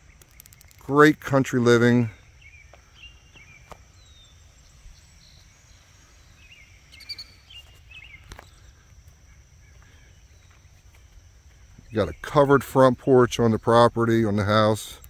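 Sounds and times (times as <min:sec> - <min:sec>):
faint bird chirps: 0:01.8 - 0:10.8.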